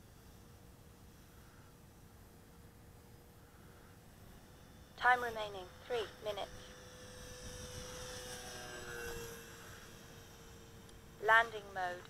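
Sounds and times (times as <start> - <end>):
model plane propeller whining: 0.0 - 12.0.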